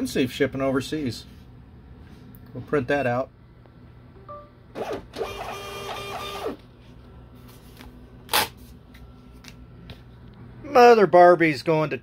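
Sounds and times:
label printer feed motor whir: 4.8 - 6.6.

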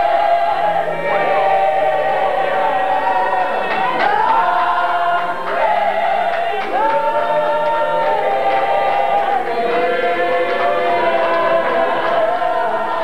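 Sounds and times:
group singing a hymn: 0.0 - 13.0.

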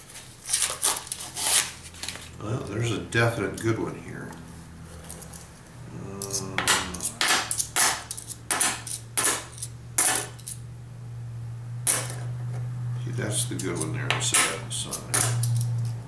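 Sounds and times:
steady low hum: 0.0 - 16.0
coins clinking on a stack: 13.8 - 16.0.

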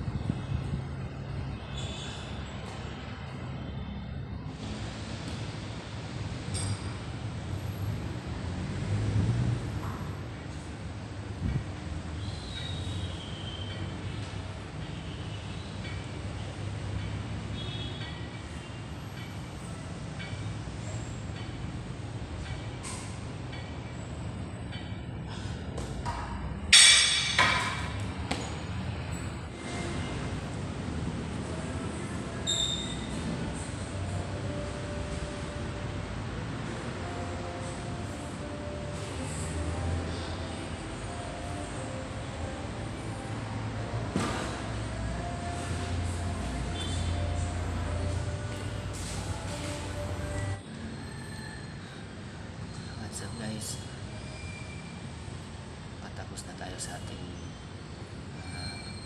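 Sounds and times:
steady low rumbling noise: 0.0 - 12.5
cable machine pulley squeaks: 12.2 - 14.4, 32.4 - 33.3, 50.4 - 53.5, 54.1 - 55.3, 57.4 - 59.0.

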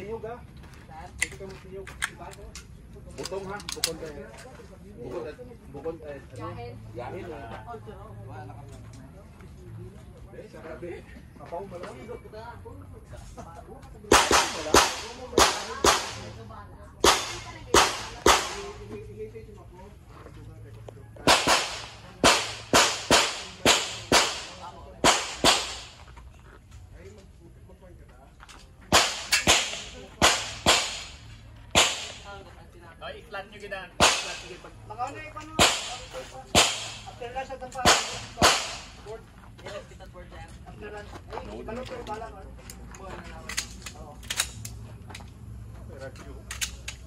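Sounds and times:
handgun shots: 14.1 - 16.4, 17.0 - 18.8, 21.2 - 26.0, 28.9 - 32.3, 34.0 - 34.6, 35.6 - 37.2, 37.8 - 39.0.

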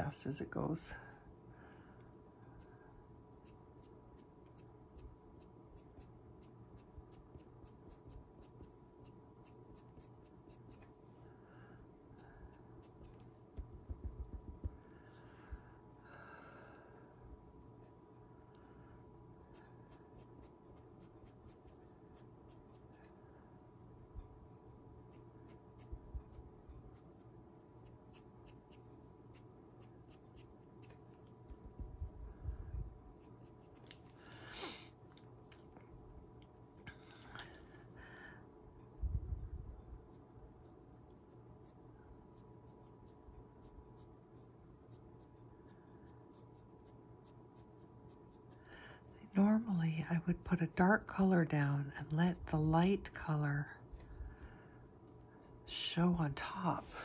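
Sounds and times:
low electrical hum: 0.0 - 57.0
pencil scratching on card: 2.6 - 11.0, 12.2 - 14.8, 19.5 - 23.0, 25.0 - 31.3, 33.1 - 33.9, 40.1 - 48.6.

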